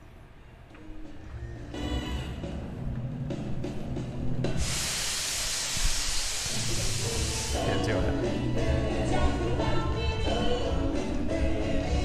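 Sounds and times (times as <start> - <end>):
vapour jets hissing: 4.5 - 8.3
show music: 7.5 - 12.0.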